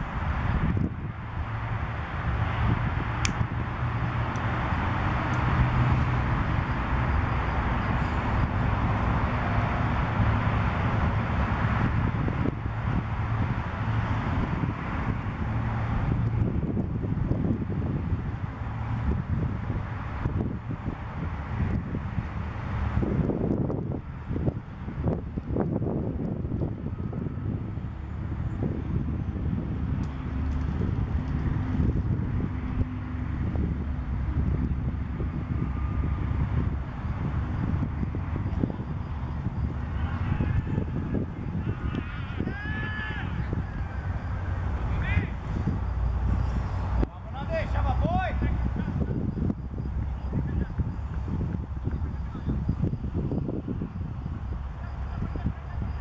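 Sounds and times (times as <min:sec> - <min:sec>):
wind noise on microphone: 0:00.0 - 0:56.0.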